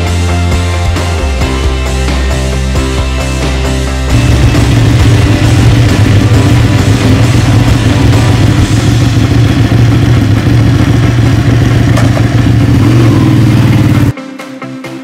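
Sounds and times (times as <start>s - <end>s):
motorcycle engine running: 0.0s - 14.2s.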